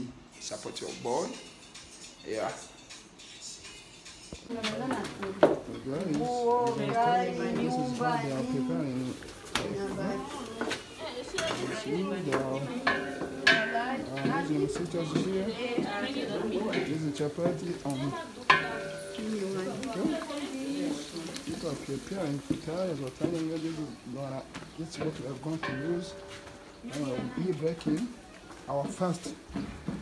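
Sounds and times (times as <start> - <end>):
wooden spoon stirring in pot: 4.8 - 30.0
kitchenware clinking: 5.3 - 28.2
onions frying in oil: 5.8 - 29.5.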